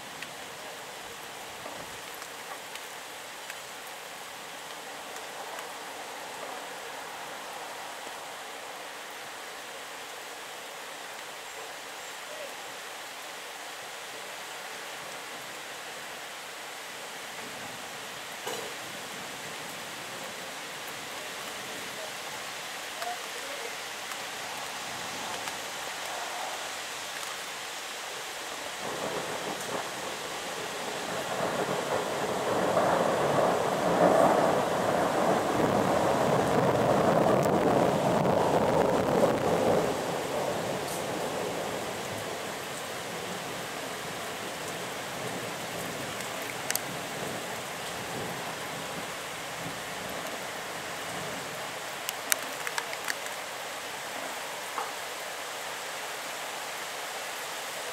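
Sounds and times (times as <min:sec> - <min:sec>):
rain falling on trees: 0:00.0 - 0:57.9
rolling thunder: 0:28.8 - 0:41.6.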